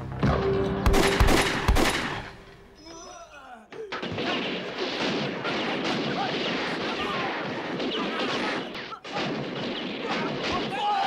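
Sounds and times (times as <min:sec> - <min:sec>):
rapid pistol shots: 0:00.9 - 0:02.3, 0:04.0 - 0:11.0.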